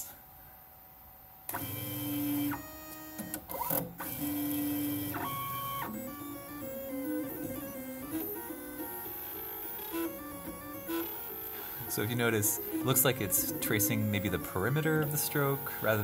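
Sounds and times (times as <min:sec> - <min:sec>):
stepper motors whining: 0:04.2 - 0:16.0.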